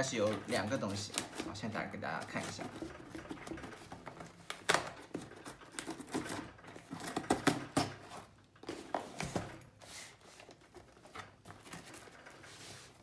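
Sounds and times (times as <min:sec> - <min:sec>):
cardboard scraping and rustling: 0:00.0 - 0:13.0
packing tape cut with blade: 0:04.4 - 0:08.3.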